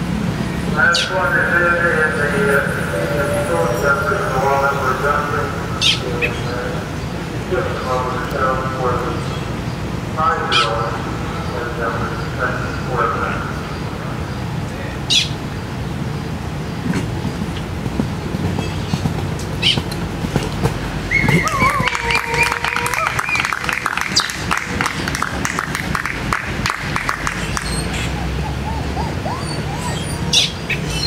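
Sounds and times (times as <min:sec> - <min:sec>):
distant voice: 0:00.0 - 0:15.5, 0:20.5 - 0:31.0
bird chirps: 0:27.2 - 0:31.0.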